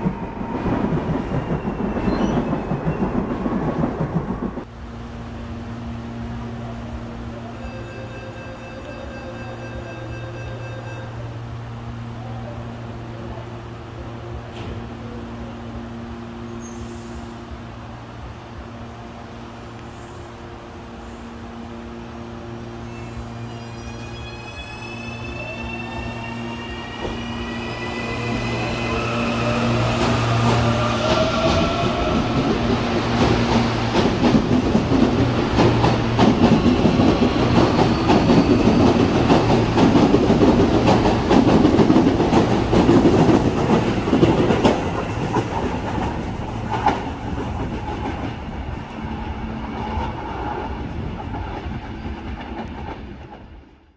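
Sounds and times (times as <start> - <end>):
train cars rumbling and clattering: 0.0 - 19.9, 25.2 - 53.9.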